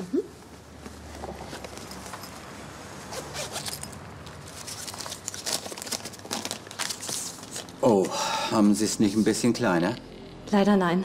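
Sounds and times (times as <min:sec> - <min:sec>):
handbag rustling and zipping: 0:00.4 - 0:07.7.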